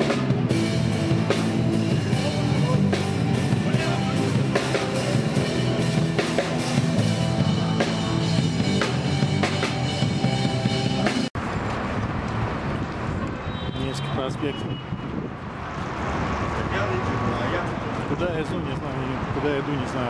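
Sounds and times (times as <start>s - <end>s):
street band playing rock music: 0.0s - 11.4s
traffic going by: 0.0s - 20.0s
people talking: 2.0s - 5.6s, 13.8s - 14.7s, 16.6s - 20.0s.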